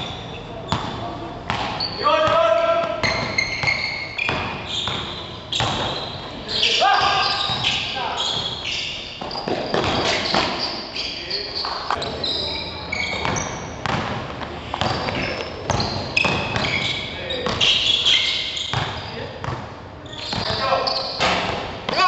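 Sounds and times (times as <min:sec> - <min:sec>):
basketball bouncing on court: 0:00.0 - 0:06.2, 0:07.0 - 0:08.6, 0:09.2 - 0:10.7, 0:13.1 - 0:17.7, 0:18.6 - 0:19.7.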